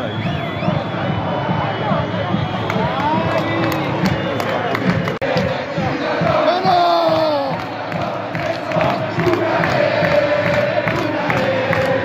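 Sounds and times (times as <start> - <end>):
low thumping beat: 0.0 - 12.0.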